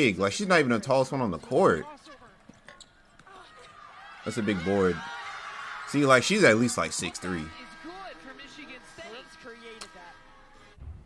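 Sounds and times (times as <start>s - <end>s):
sports commentator speaking: 0.0s - 2.4s, 4.2s - 10.5s
steady background tones: 5.3s - 10.8s.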